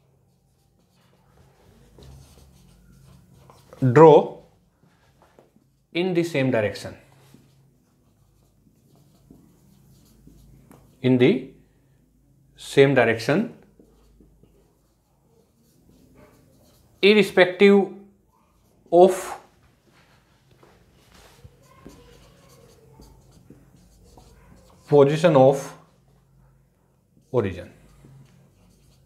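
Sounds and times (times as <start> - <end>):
marker pen writing on whiteboard: 0.0 - 6.3, 7.0 - 11.5, 13.4 - 17.6, 18.5 - 19.7, 20.5 - 29.0
marker tapping on whiteboard: 21.8 - 24.7.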